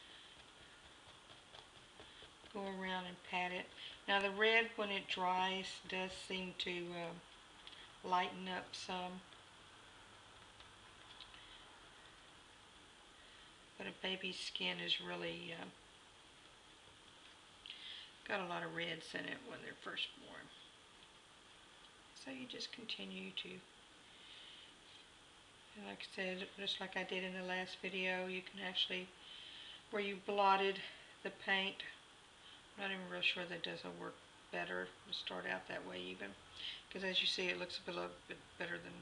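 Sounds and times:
faint steady hiss: 0.0s - 39.0s.

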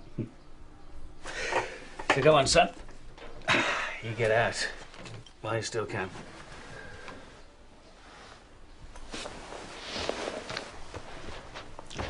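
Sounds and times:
short rustle: 8.0s - 12.0s.

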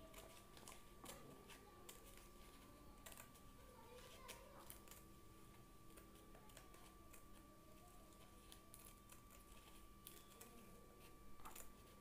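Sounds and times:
scissors snipping paper: 0.0s - 5.1s, 5.9s - 12.0s
low electrical hum: 0.0s - 12.0s.

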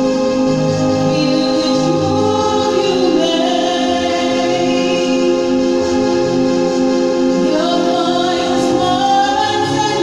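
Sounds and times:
karaoke backing track with bass line: 0.0s - 10.0s
person singing: 1.0s - 5.6s, 7.4s - 10.0s.

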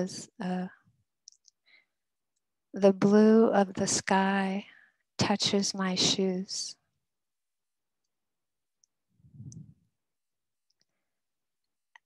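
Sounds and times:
soft low sound: 9.1s - 10.0s.

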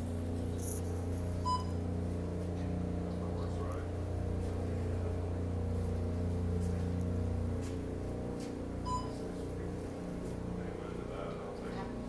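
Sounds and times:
low machinery hum: 0.0s - 12.0s
short electronic beep: 1.4s - 1.8s, 8.8s - 9.2s.

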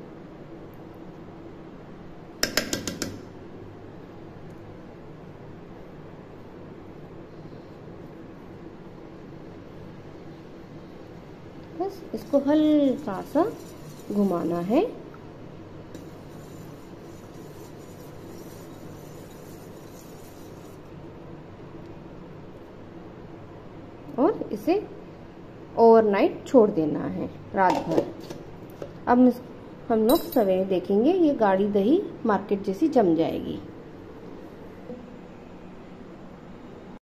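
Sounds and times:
steady low hum: 0.0s - 37.0s
spoon stirring liquid in pot: 11.9s - 21.0s
spoon clinking against metal: 30.1s - 30.4s.

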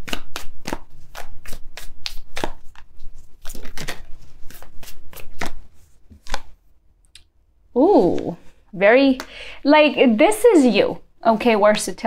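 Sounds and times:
cards being shuffled: 0.0s - 6.6s.

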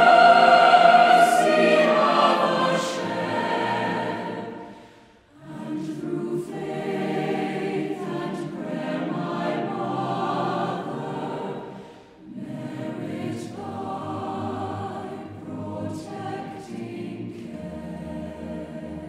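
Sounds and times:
mixed choir singing: 0.0s - 19.0s.

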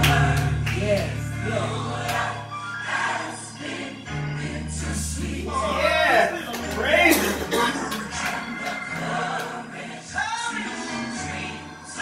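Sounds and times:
sustained bass line: 0.0s - 2.3s
choir singing gospel: 0.0s - 12.0s.

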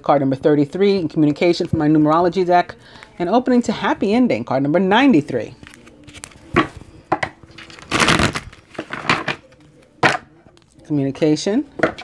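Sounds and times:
cards rustling and sliding: 5.6s - 6.8s, 7.5s - 9.7s.

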